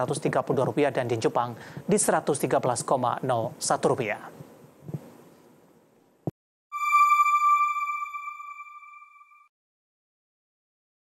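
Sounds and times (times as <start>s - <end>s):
electronic chime: 6.7s - 9.5s.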